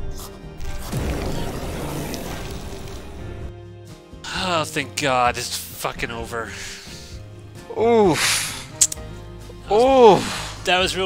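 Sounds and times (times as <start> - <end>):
sustained horror music score: 0.0 - 11.0.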